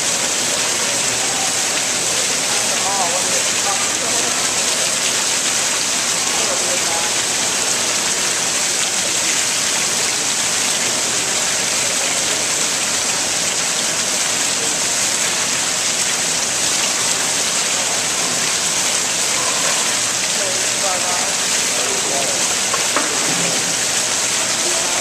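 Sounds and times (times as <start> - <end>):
fountain water splashing into basin: 0.0 - 25.0.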